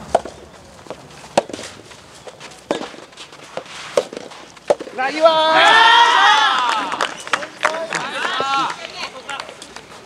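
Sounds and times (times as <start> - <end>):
man shouting: 5.0 - 7.0.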